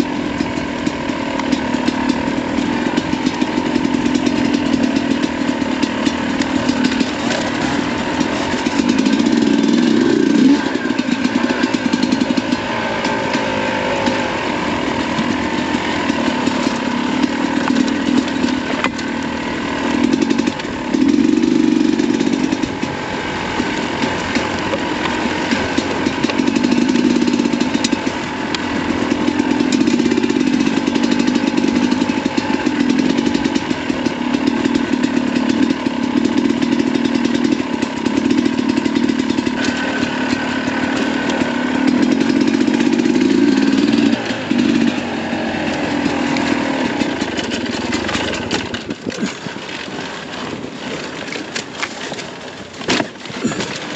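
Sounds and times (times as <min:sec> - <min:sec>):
two-stroke motorcycle engine revving: 0:00.0 - 0:53.9.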